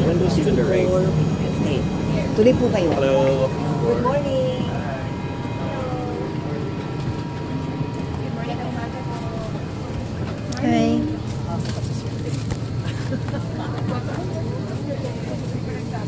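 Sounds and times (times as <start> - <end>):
airliner cabin hum: 0.0 - 16.0
passengers chattering: 0.0 - 16.0.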